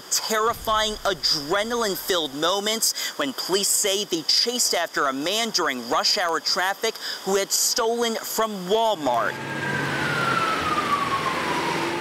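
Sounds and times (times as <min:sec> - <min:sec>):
police siren wailing: 0:09.2 - 0:12.0
road traffic noise: 0:09.3 - 0:12.0.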